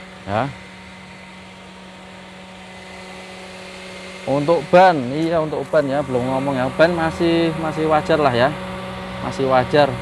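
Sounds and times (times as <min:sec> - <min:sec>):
steady machine hum: 0:00.0 - 0:10.0.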